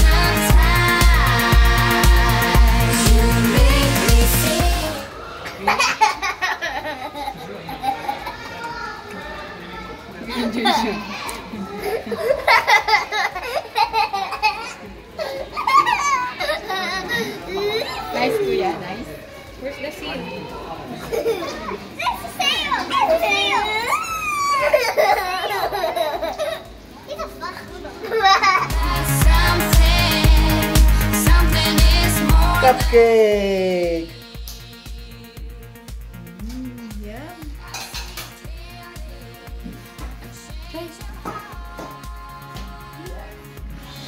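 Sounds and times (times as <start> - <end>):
small child laughing: 5.6 - 8.6, 10.3 - 18.1, 23.9 - 26.8, 27.5 - 28.8
children squealing: 23.3 - 25.8.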